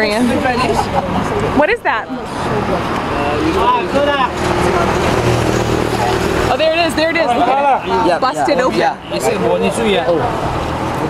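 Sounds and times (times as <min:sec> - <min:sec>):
indistinct voices talking: 0:00.0 - 0:11.0
road traffic hum: 0:00.0 - 0:11.0.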